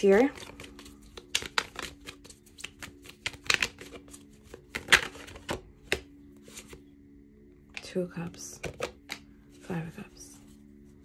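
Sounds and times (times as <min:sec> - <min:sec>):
cards being shuffled: 0:00.0 - 0:06.9, 0:08.6 - 0:09.7
cards laid down: 0:08.6 - 0:09.3.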